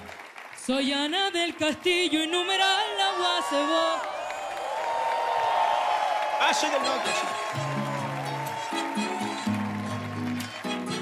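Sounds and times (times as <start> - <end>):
crowd applause and cheering: 0.0 - 11.0.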